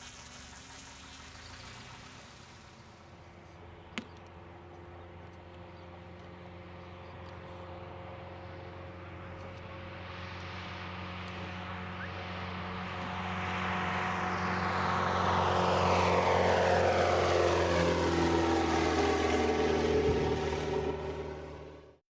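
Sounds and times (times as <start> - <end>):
model airplane engine flying past: 0.0 - 22.0.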